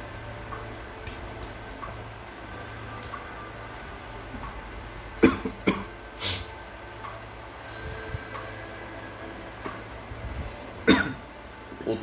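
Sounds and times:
man coughing: 10.9 - 11.2.

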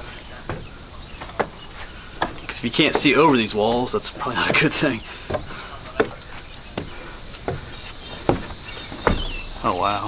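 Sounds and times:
footsteps on wooden stairs: 0.0 - 9.9
faint outdoor background: 0.0 - 10.0.

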